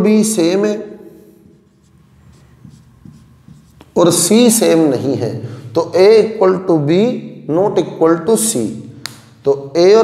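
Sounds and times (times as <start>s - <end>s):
faint scratching of writing: 1.1s - 4.6s.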